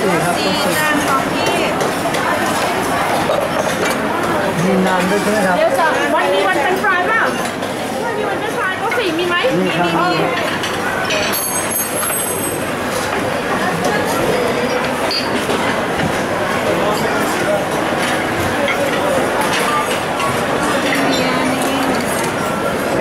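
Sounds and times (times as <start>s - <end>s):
many overlapping voices: 0.0s - 23.0s
dishes and utensils clinking: 10.0s - 16.2s, 16.8s - 23.0s.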